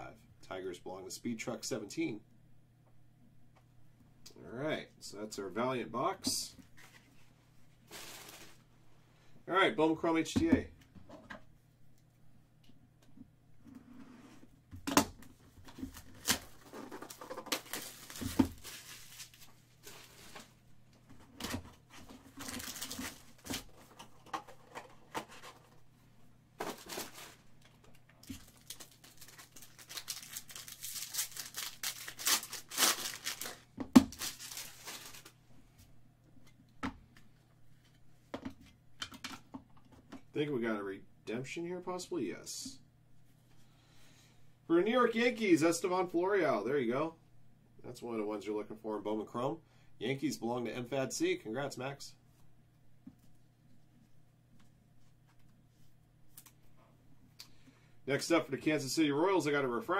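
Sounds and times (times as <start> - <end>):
foil wrappers tearing and crinkling: 15.8 - 20.3, 22.3 - 23.7, 26.6 - 27.4, 28.2 - 35.4.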